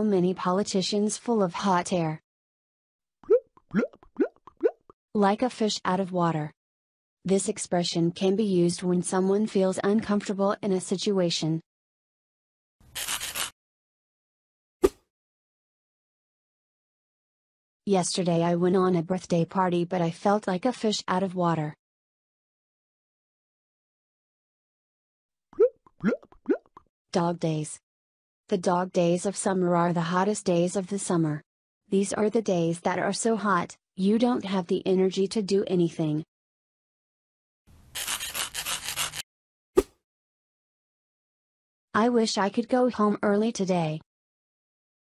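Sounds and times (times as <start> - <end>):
cartoon bubble bloops: 3.2 - 5.0, 25.6 - 26.8.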